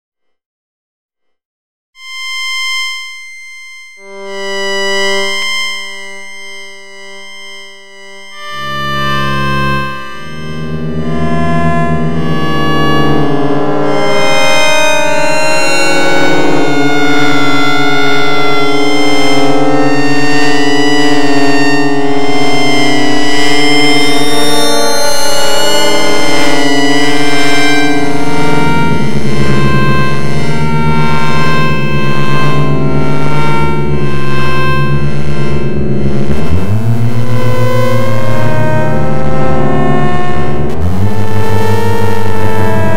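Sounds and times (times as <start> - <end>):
high synthesized electronic tone: 2.0 - 42.9.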